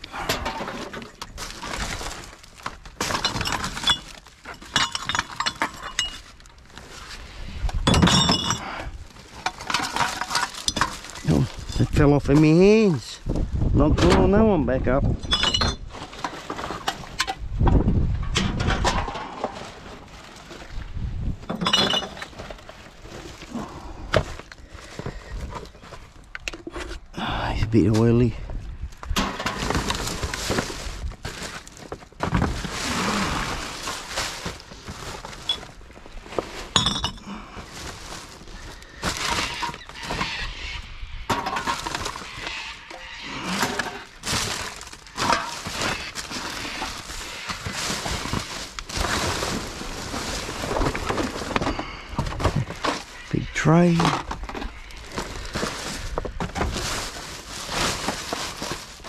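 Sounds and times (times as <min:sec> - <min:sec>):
plastic bags rustling: 0:00.0 - 0:13.4, 0:19.2 - 0:26.4, 0:29.2 - 0:40.4, 0:41.4 - 0:42.5, 0:43.4 - 0:59.0
trash clattering and clinking: 0:00.1 - 0:07.1, 0:07.7 - 0:12.9, 0:15.1 - 0:26.8, 0:29.0 - 0:40.3, 0:41.3 - 0:42.4, 0:43.0 - 0:59.0.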